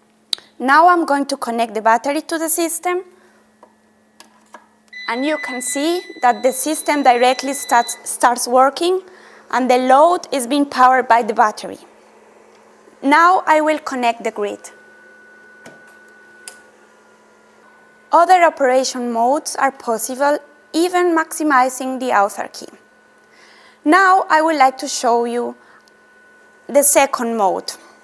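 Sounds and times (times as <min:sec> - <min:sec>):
faint electrical hum: 0:00.0 - 0:28.0
faint steady high tone: 0:04.9 - 0:09.0.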